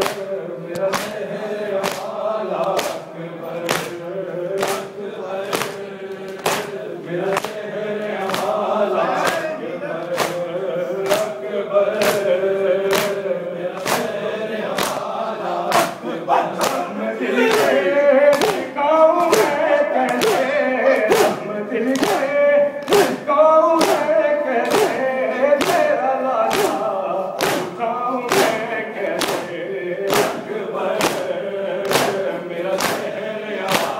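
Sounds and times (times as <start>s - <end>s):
hands slapping chests: 0.0s - 4.0s, 4.6s - 12.3s, 12.9s - 13.2s, 13.8s - 15.1s, 15.7s - 16.0s, 16.6s - 16.9s, 17.5s - 23.2s, 23.8s - 25.0s, 25.6s - 28.6s, 29.2s - 33.9s
men chanting in unison: 0.0s - 33.9s.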